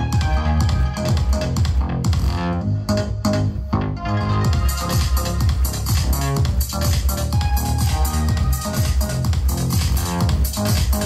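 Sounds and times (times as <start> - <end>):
bass-heavy electronic dance music: 0.0 - 11.0.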